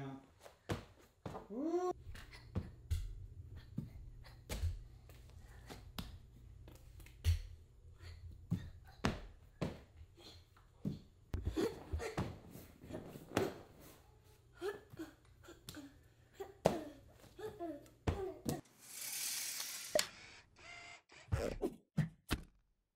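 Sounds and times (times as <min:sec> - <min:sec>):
child hopping thuds: 0:00.5 - 0:01.6, 0:16.6 - 0:18.6.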